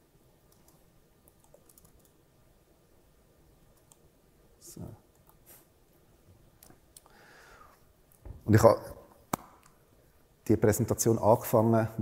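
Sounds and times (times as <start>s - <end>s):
laptop keys clicking: 0.5s - 2.2s.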